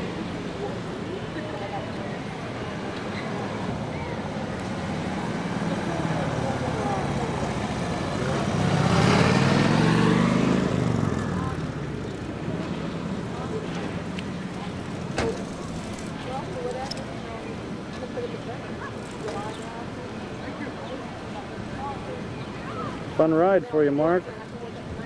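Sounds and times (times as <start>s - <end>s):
street traffic: 0.0s - 25.0s
vehicle engine passing close: 2.6s - 16.9s.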